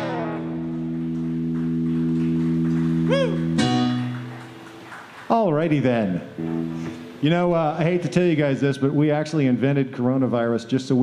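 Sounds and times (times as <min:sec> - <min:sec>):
rock band sustained chord: 0:00.0 - 0:04.1.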